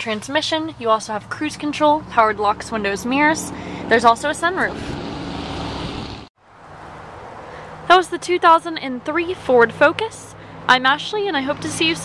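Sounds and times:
steady rushing noise: 0:03.2 - 0:06.3.

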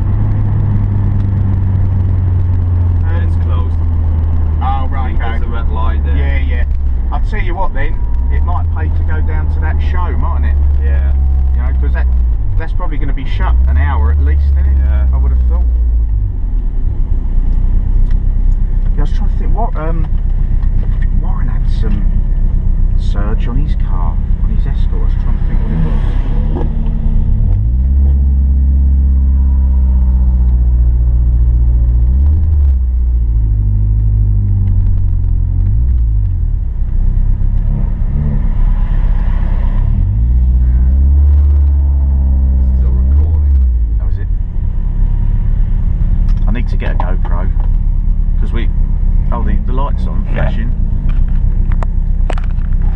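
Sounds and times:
car engine revving: 0:00.0 - 0:52.9
road noise: 0:00.0 - 0:52.9.

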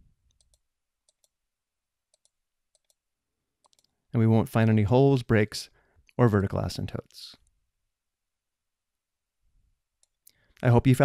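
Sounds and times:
computer mouse clicks: 0:00.3 - 0:01.4, 0:02.1 - 0:03.0, 0:03.6 - 0:04.0.

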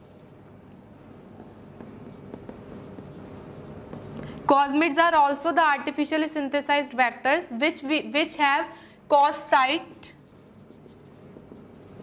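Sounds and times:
low room hum: 0:00.0 - 0:12.0
marker writing on whiteboard: 0:01.2 - 0:05.0, 0:10.0 - 0:12.0.

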